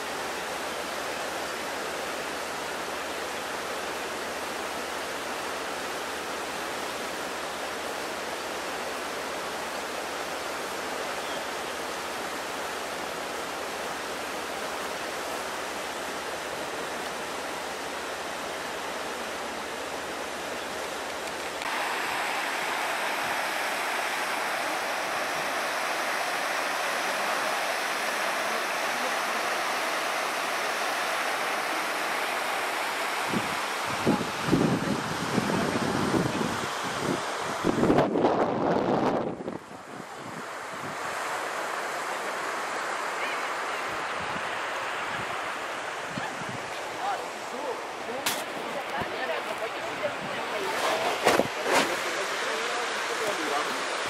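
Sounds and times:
floodwater rushing down ravine: 0:00.0 - 0:54.0.

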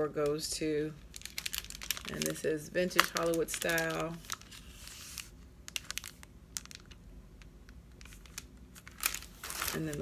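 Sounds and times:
low room hum: 0:00.0 - 0:10.0
plastic packaging crinkling: 0:01.0 - 0:07.0, 0:07.9 - 0:10.0.

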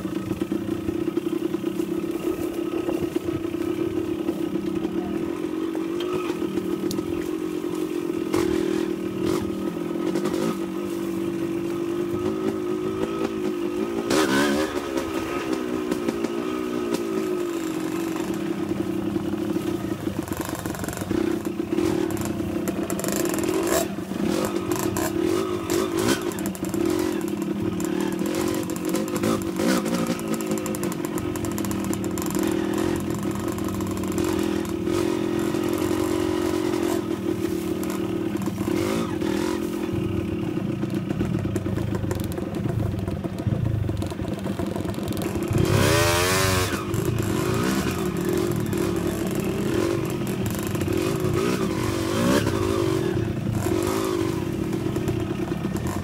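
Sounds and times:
bikes clattering over ruts: 0:00.0 - 0:56.0
dirt bike engines: 0:00.0 - 0:56.0.

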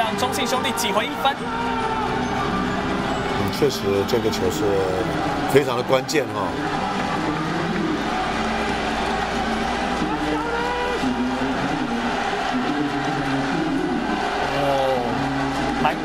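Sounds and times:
stadium crowd yelling and chanting: 0:00.0 - 0:16.0.

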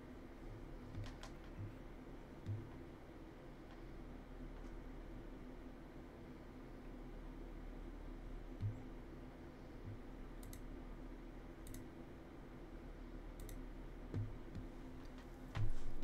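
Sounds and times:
steady low hum: 0:00.0 - 0:16.0
soft low thumps: 0:00.5 - 0:02.9, 0:08.6 - 0:09.0, 0:09.8 - 0:10.1, 0:14.1 - 0:14.8, 0:15.6 - 0:16.0
computer mouse clicking: 0:00.9 - 0:01.7, 0:09.8 - 0:10.7, 0:11.6 - 0:11.9, 0:13.4 - 0:15.3.

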